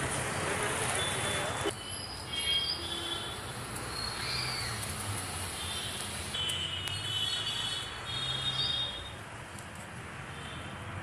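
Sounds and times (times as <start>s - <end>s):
high chirping calls: 1.0s - 3.1s, 3.9s - 4.8s.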